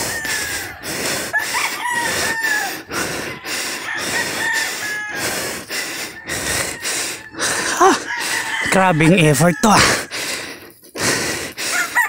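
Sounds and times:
rooster crowing: 0.0 - 10.1, 11.7 - 12.0
man panting heavily: 0.0 - 12.0.

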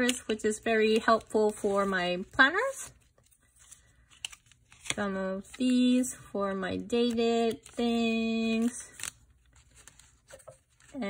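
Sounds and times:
paper rustling and scraping: 8.5 - 11.0.

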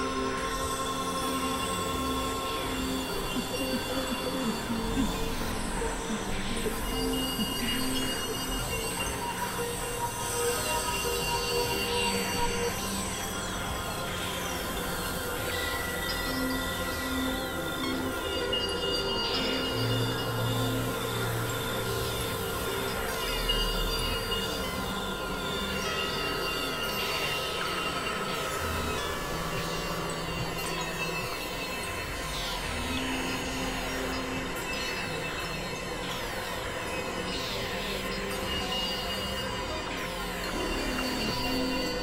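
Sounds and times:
electronic synthesizer drone music: 0.0 - 42.0.

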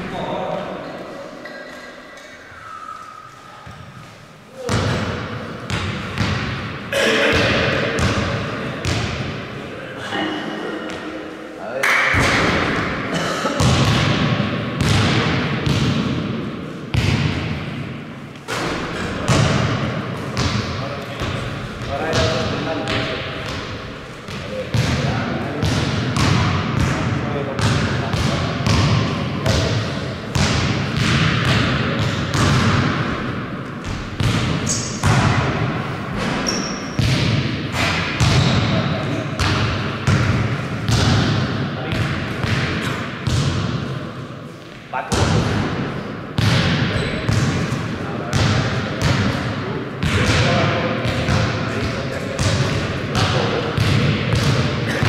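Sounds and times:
basketball bouncing on court: 4.6 - 9.4, 13.6 - 43.9, 45.1 - 55.0.

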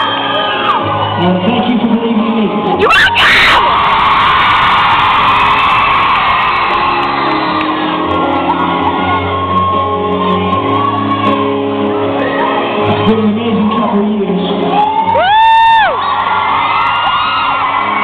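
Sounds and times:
crowd screaming and cheering: 0.0 - 18.0
piano chords: 4.9 - 15.2.

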